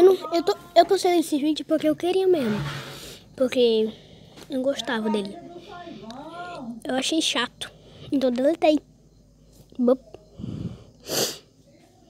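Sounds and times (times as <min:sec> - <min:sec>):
soft low breath: 0:10.3 - 0:11.6
sharp hissing burst of air: 0:10.4 - 0:11.5.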